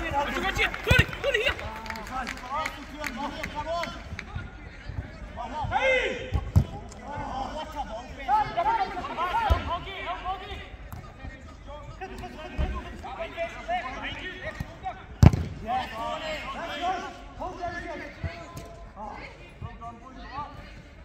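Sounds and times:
players shouting: 0:00.0 - 0:19.4.

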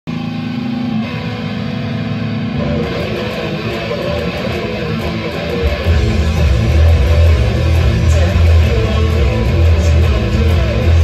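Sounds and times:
electric guitar rock song: 0:00.1 - 0:11.0
heavy low bass: 0:00.1 - 0:11.0.

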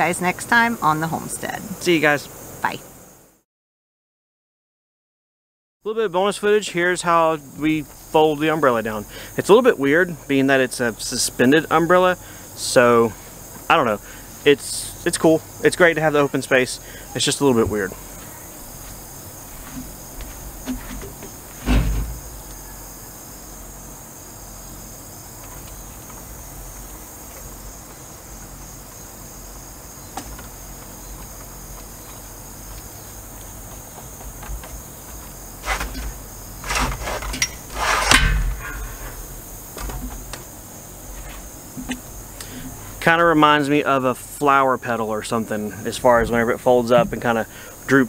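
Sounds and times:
crickets chirring: 0:00.0 - 0:03.4, 0:05.9 - 0:48.0.

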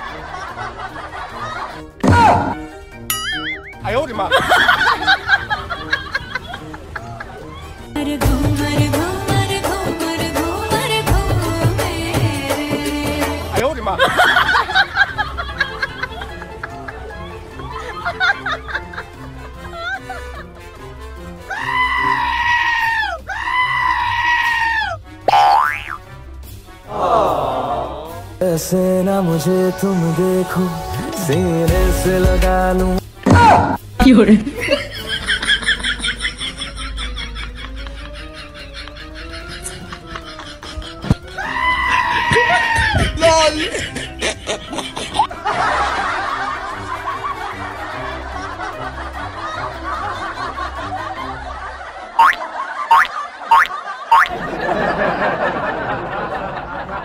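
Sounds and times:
many voices laughing: 0:00.0 - 0:02.0, 0:04.2 - 0:07.9, 0:13.9 - 0:20.6, 0:34.5 - 0:57.0
background music: 0:00.0 - 0:57.0.

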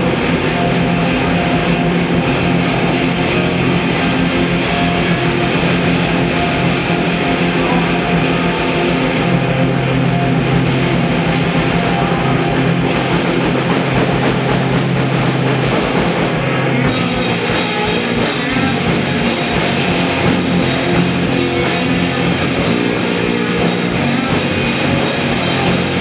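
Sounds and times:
rock band playing live: 0:00.0 - 0:26.0.

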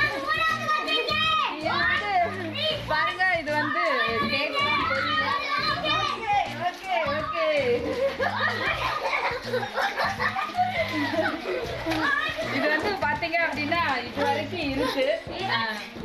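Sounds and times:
water splashing: 0:00.0 - 0:15.4
children shrieking and laughing: 0:00.0 - 0:16.0.

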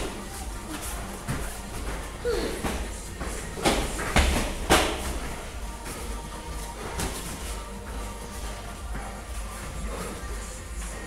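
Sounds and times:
padded gloves smacking: 0:00.0 - 0:07.6
background music: 0:00.0 - 0:11.0.

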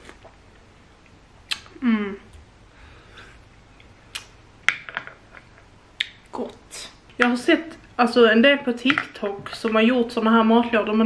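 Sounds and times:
lip smacks and mouth clicks: 0:01.4 - 0:01.8, 0:03.8 - 0:04.4, 0:06.0 - 0:06.3.

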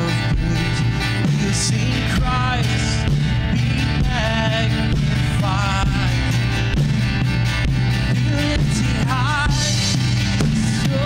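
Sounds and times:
person singing with vibrato: 0:00.0 - 0:06.9, 0:07.8 - 0:11.0
acoustic guitar: 0:00.0 - 0:11.0
bass line: 0:00.0 - 0:11.0
worship band playing: 0:00.0 - 0:11.0.

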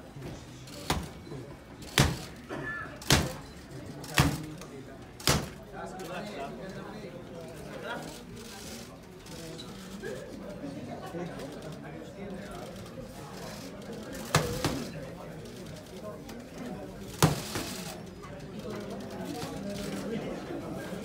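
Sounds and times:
punches cracking on pads: 0:01.9 - 0:02.4, 0:03.0 - 0:03.4, 0:05.2 - 0:05.6.

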